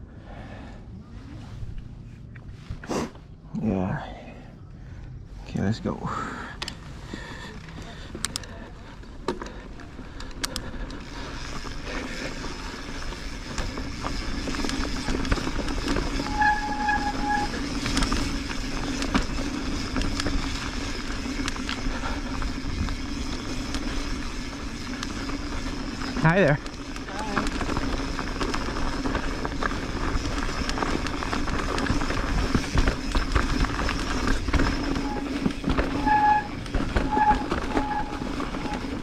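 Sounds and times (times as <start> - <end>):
bike tyres on dirt: 0.0 - 39.0
bike clicks and rattles: 5.7 - 39.0.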